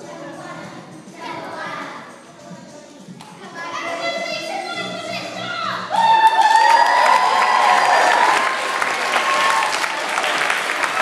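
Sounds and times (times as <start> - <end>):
chorus of young voices: 0.0 - 11.0.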